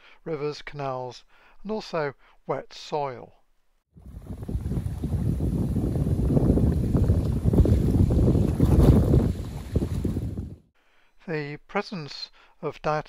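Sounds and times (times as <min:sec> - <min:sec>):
water rushing past boat: 0:04.0 - 0:10.6
wind buffeting microphone: 0:04.0 - 0:10.7.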